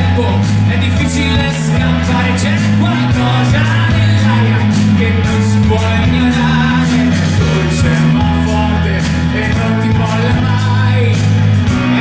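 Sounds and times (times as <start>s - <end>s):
live rock band: 0.0s - 12.0s
man singing: 0.0s - 12.0s.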